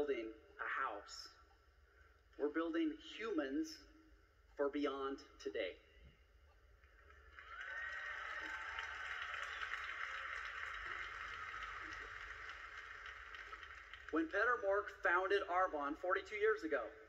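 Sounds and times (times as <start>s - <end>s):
audience applause: 7.0s - 14.4s.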